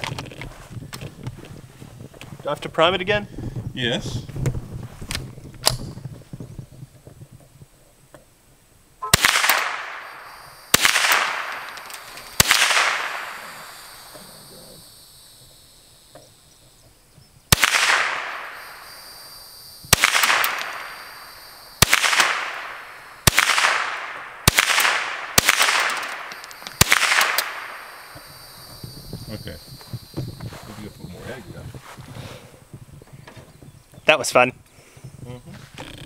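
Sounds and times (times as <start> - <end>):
rifle shots echoing: 9.0 - 14.4, 17.5 - 28.6.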